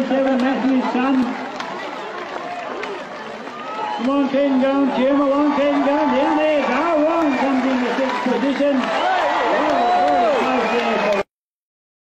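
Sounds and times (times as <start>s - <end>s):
man commentating: 0.0s - 1.4s, 4.0s - 11.3s
crowd noise: 0.0s - 11.3s.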